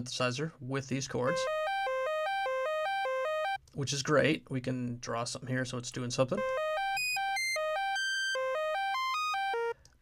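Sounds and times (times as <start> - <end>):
synthesizer arpeggio: 1.3 - 3.6, 6.4 - 9.8.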